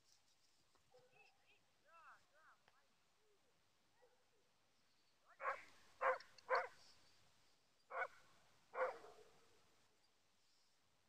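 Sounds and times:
dog barking: 0:04.0 - 0:04.3, 0:05.4 - 0:06.8, 0:07.9 - 0:09.4.

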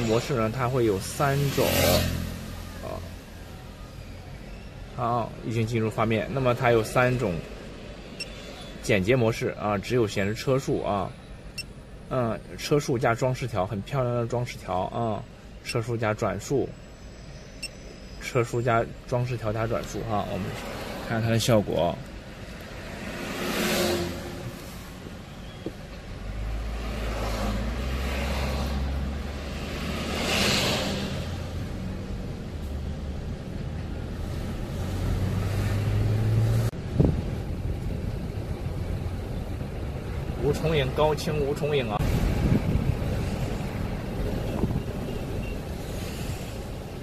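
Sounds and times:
car engine and road rumble: 0:00.0 - 0:47.0
passing traffic: 0:00.0 - 0:47.0.

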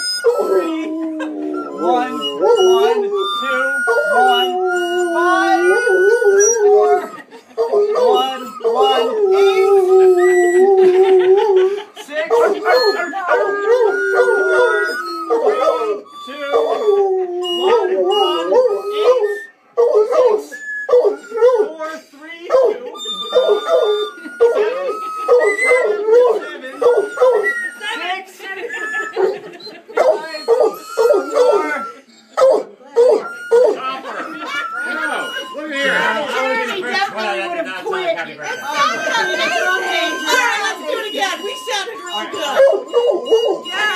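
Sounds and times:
toy whistles playing a tune: 0:00.0 - 0:00.9, 0:01.5 - 0:11.2, 0:11.8 - 0:22.1, 0:22.8 - 0:32.4, 0:33.1 - 0:37.3, 0:38.4 - 0:43.9
people's voices: 0:00.0 - 0:43.9.

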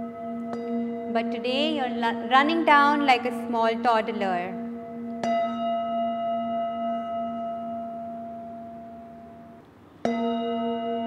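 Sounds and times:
singing bowl ringing: 0:00.0 - 0:11.0.

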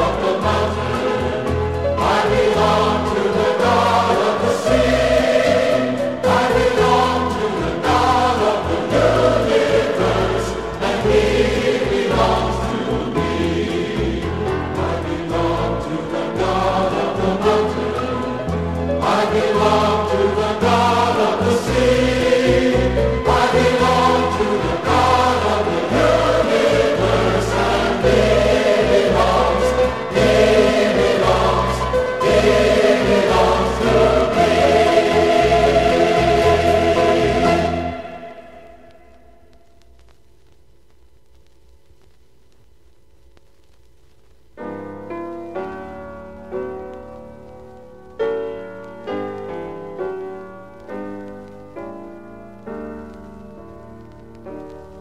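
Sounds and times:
choir singing a hymn: 0:00.0 - 0:39.5
instrumental accompaniment: 0:00.0 - 0:40.1.

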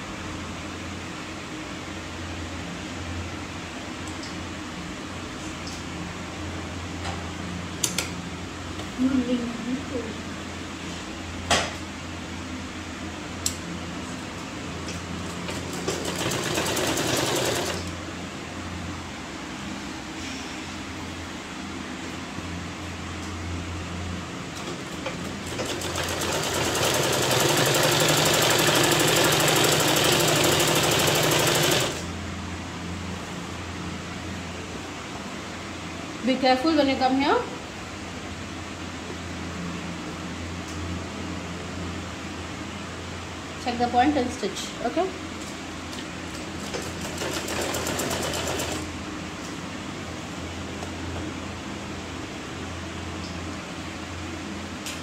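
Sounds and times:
sewing machine stitching: 0:15.5 - 0:17.9, 0:25.4 - 0:32.1, 0:46.6 - 0:48.8.

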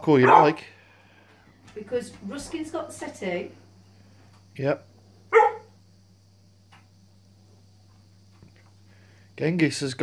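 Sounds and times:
dog barking: 0:00.2 - 0:00.6, 0:05.3 - 0:05.8.

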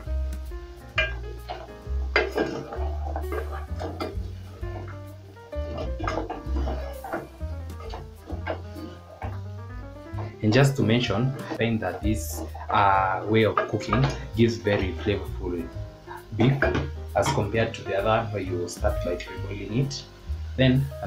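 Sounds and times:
background music: 0:00.0 - 0:21.0
wooden spoon scraping metal pot: 0:00.9 - 0:18.3.

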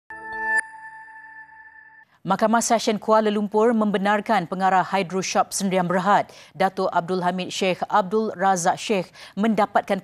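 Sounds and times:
high ringing tone: 0:00.1 - 0:02.0.

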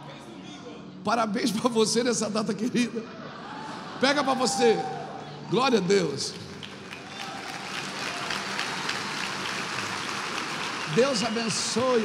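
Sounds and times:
crowd clapping: 0:06.2 - 0:12.0.

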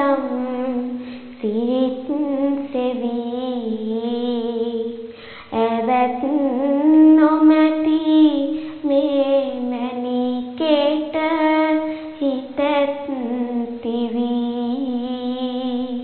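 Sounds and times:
girl singing chanted verse: 0:00.0 - 0:16.0
girl breathing in: 0:00.9 - 0:01.4, 0:05.0 - 0:05.6, 0:08.5 - 0:08.8, 0:11.8 - 0:12.2.

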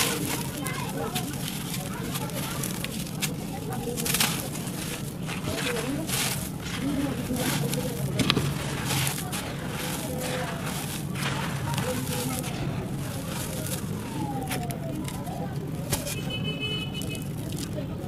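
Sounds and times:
hands scooping dry dirt: 0:00.0 - 0:18.0.

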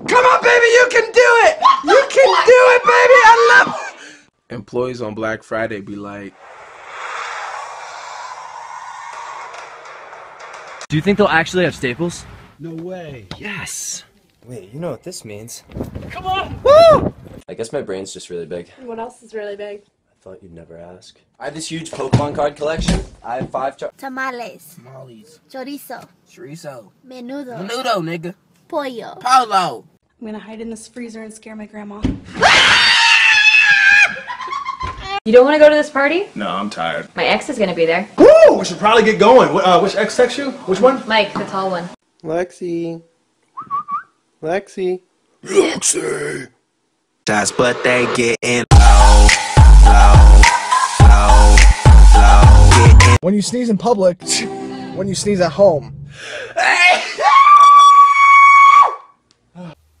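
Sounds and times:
woman screaming: 0:01.5 - 0:04.0, 0:16.6 - 0:17.1, 0:32.4 - 0:34.2, 0:56.6 - 0:59.1
man sneezing with high scream: 0:45.4 - 0:46.5, 0:56.3 - 0:57.6.

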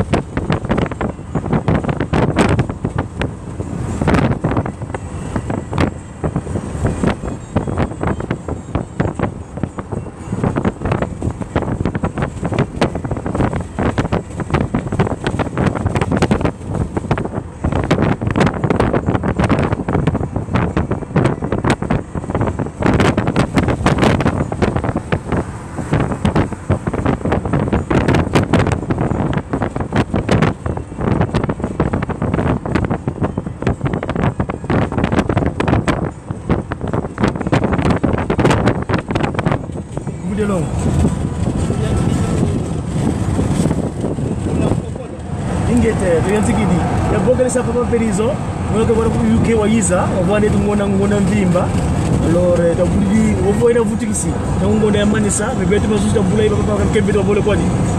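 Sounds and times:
car road noise: 0:00.0 - 0:57.9
wind buffeting microphone: 0:00.0 - 0:57.9.

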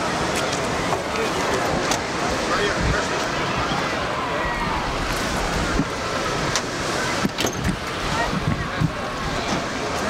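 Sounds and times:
rushing outdoor noise: 0:00.0 - 0:10.0.

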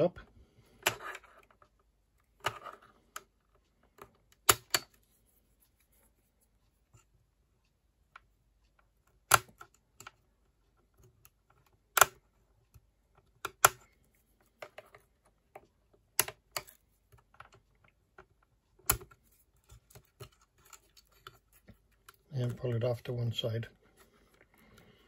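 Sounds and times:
plastic clicks and scraping: 0:00.7 - 0:05.2, 0:09.1 - 0:23.0.

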